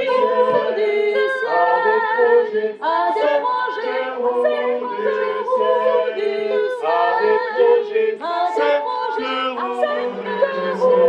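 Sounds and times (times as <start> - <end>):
voices singing in harmony: 0.0 - 11.0.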